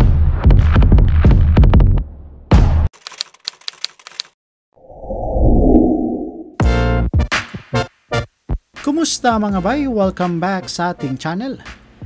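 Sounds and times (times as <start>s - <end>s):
typewriter keystroke clicks: 3.0s - 4.3s
low swell: 4.8s - 6.6s.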